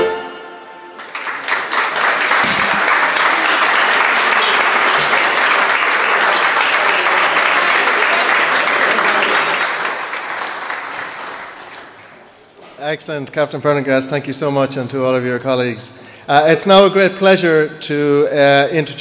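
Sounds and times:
audience applauding: 1.0s - 12.6s.

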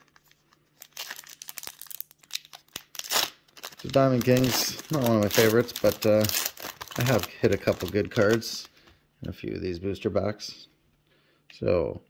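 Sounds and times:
foil wrapper tearing and crinkling: 0.0s - 8.7s.

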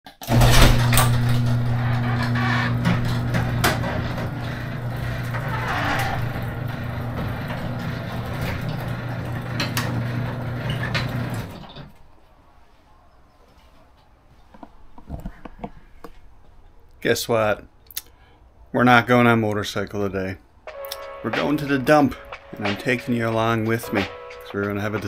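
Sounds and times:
garage door clicking and rattling: 0.1s - 12.0s
garage door motor hum: 0.2s - 12.1s.

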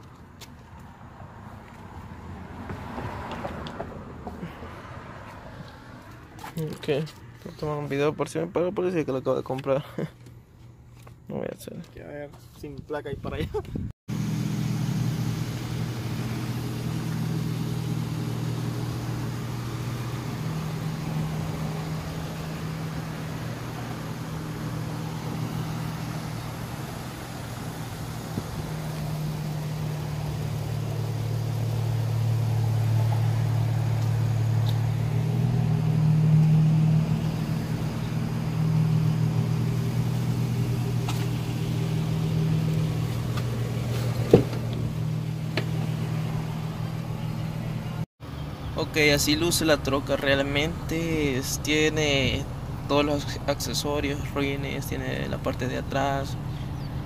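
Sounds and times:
pickup engine idling: 14.1s - 57.0s.

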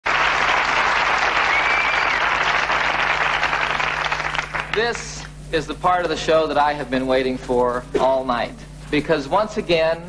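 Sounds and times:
studio audience applauding: 0.0s - 5.0s.

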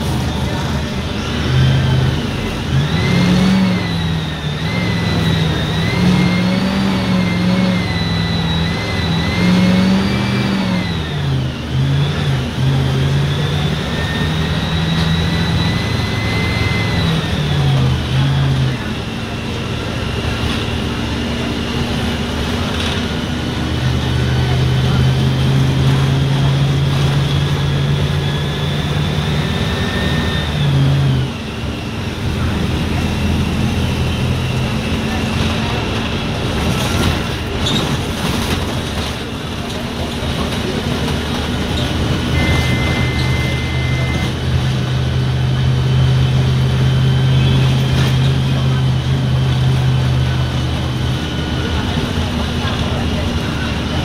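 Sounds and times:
bus diesel engine: 0.0s - 54.0s
high whine: 41.0s - 54.0s.

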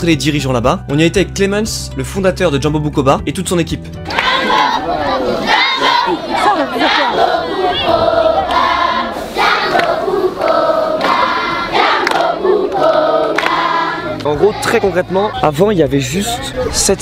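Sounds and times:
children singing in chorus: 4.1s - 15.4s.

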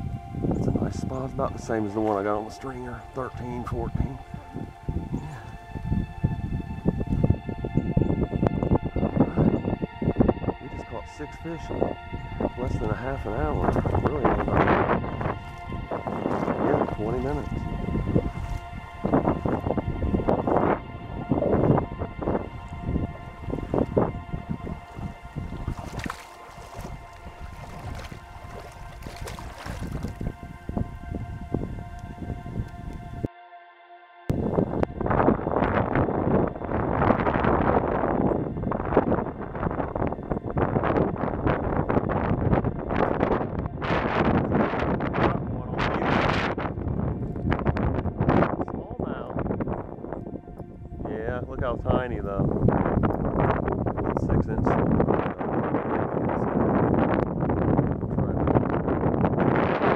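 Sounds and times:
wind buffeting microphone: 0.0s - 33.3s, 34.3s - 59.9s
quiet background music: 0.0s - 57.7s
water splashing: 13.2s - 19.7s, 22.5s - 33.2s.

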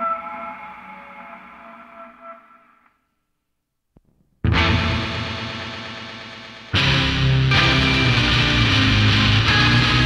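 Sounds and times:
distorted electric guitar chord: 4.5s - 10.0s
rock band hit: 4.5s - 10.0s.

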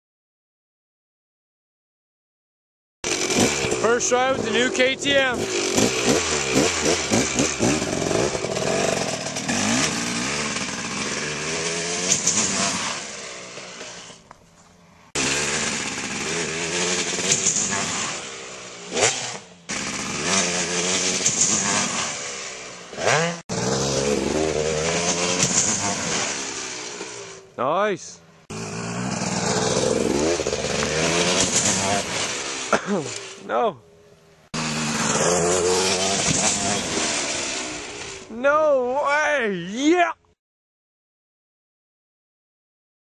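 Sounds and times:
dirt bike engine revving: 3.0s - 14.3s, 15.1s - 33.9s, 34.5s - 39.1s.

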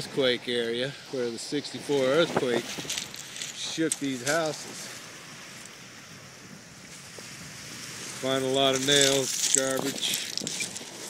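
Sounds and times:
distant water on stony beach: 0.0s - 11.0s.

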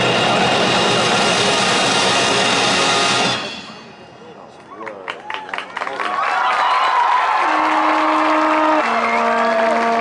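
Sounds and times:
marching band loud closing chord: 0.0s - 4.0s, 7.4s - 10.0s.

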